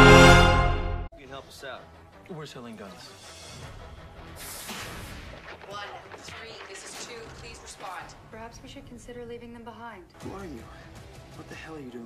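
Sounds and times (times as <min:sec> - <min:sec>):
low background music: 0:00.0 - 0:06.2, 0:07.2 - 0:12.0.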